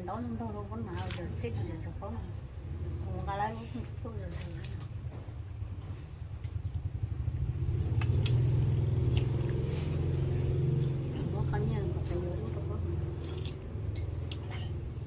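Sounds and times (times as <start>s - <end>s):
vehicle engine humming: 0.7s - 15.0s.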